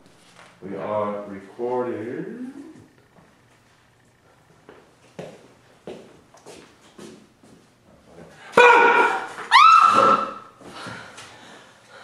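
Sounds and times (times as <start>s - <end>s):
woman crying out: 9.5s - 10.4s.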